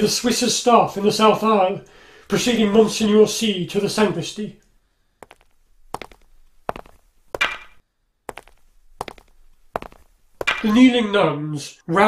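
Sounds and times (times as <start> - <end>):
staff knocking on stone floor: 6.0 - 10.7.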